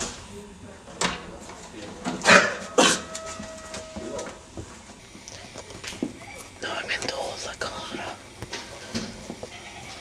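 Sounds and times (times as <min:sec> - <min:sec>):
person whispering: 0:06.6 - 0:08.3.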